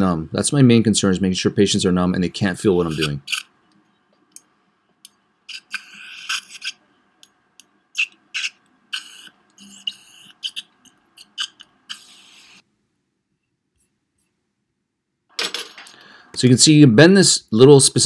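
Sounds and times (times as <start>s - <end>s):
faint steady hum: 0.0s - 18.0s
saliva ejector hissing slurps: 8.0s - 12.6s.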